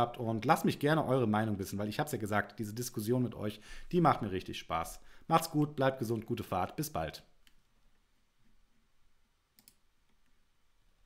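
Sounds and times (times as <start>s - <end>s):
faint clicks: 9.5s - 10.4s.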